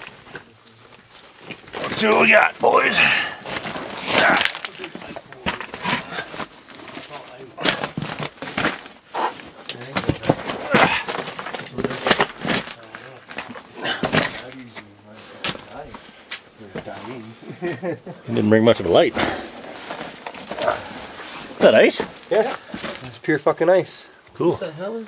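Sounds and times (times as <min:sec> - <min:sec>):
rock scrapes and knocks: 0:00.0 - 0:16.0, 0:19.2 - 0:23.2
crunching footsteps on loose rock: 0:00.0 - 0:17.0.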